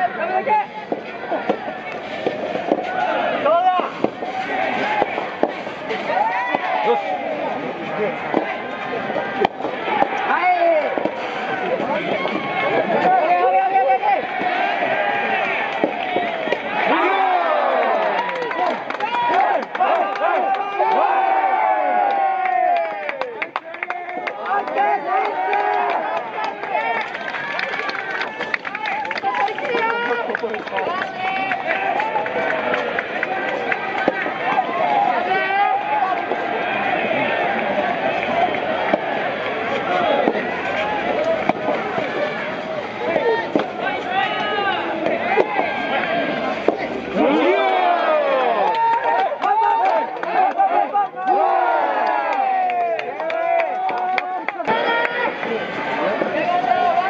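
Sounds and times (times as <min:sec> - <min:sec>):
crowd shouting and cheering: 0:00.0 - 0:57.0
racket hitting rubber ball: 0:00.8 - 0:03.0, 0:03.9 - 0:06.8, 0:08.2 - 0:08.7, 0:09.3 - 0:11.6, 0:15.4 - 0:16.8, 0:33.9 - 0:34.8, 0:38.7 - 0:42.3, 0:43.5 - 0:43.8.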